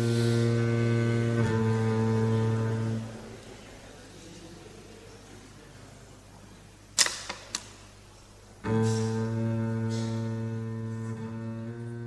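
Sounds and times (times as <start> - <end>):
instrumental score: 0.0 - 3.2, 8.6 - 12.0.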